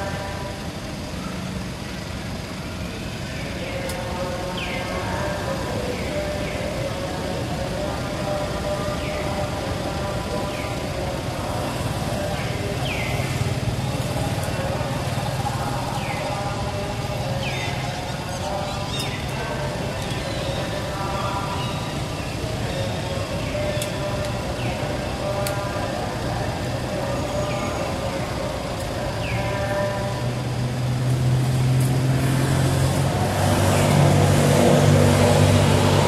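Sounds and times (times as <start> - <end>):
low engine-like hum: 0.0 - 36.0.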